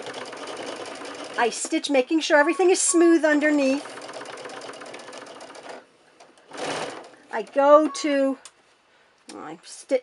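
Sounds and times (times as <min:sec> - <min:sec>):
sewing machine stitching: 0:00.0 - 0:05.8, 0:06.4 - 0:07.2.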